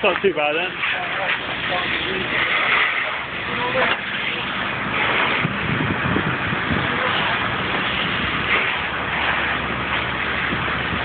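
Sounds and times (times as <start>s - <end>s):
fire engine pump running: 0.0s - 11.0s
fire hose spraying water: 0.0s - 11.0s
faint voices: 6.6s - 8.2s.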